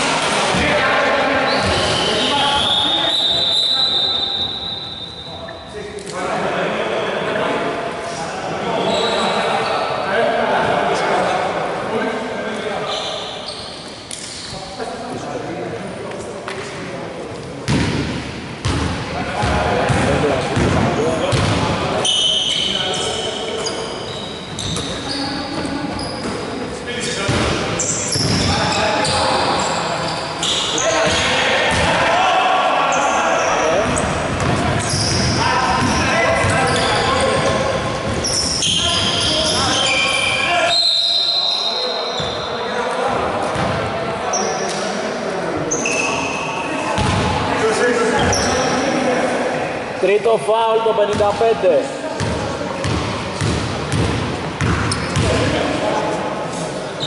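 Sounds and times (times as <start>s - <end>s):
shoe squeaks on court: 12.9s - 14.8s, 22.0s - 26.6s, 27.8s - 31.4s, 34.8s - 42.7s, 45.7s - 46.7s, 48.2s - 48.9s, 54.6s - 55.5s.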